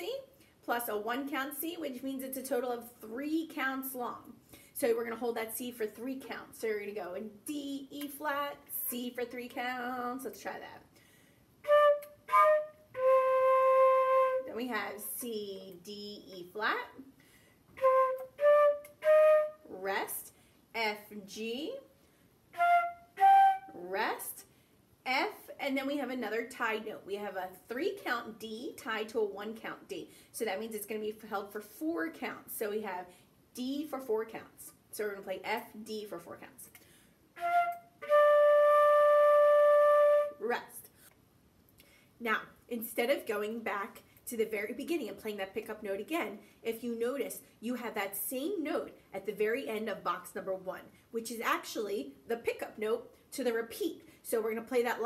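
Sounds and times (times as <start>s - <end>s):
flute playing slow notes: 11.6s - 14.5s, 17.8s - 19.7s, 22.5s - 23.8s, 37.4s - 40.4s.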